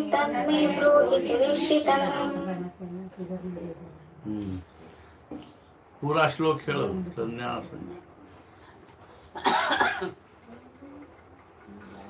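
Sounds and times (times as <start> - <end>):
man coughing: 9.4 - 10.2.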